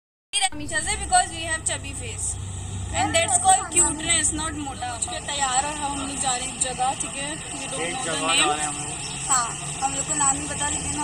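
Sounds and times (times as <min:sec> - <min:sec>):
low steady rumble: 0:00.4 - 0:11.0
woman talking: 0:00.4 - 0:11.0.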